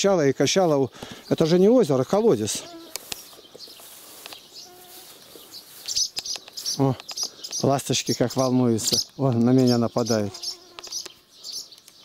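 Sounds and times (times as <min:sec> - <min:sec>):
swallows alarm chirps: 0:00.9 - 0:12.0.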